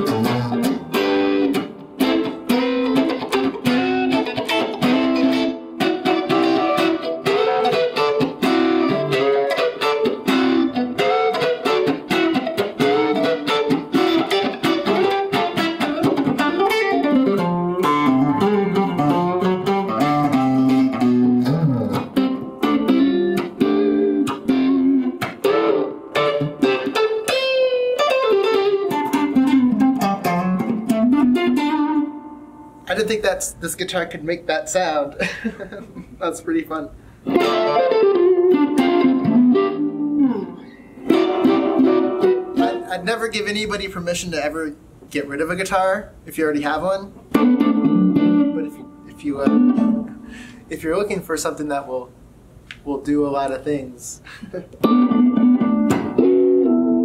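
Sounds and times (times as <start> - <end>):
electric guitar through amplifier: 0.0 - 32.9, 37.2 - 43.2, 47.1 - 50.7, 54.3 - 57.0.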